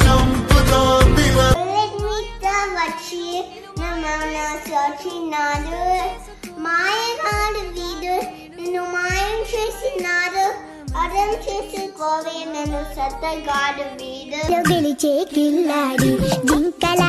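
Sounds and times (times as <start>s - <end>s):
backing track: 0.0s - 4.2s, 14.4s - 17.0s
girl singing: 1.5s - 17.0s.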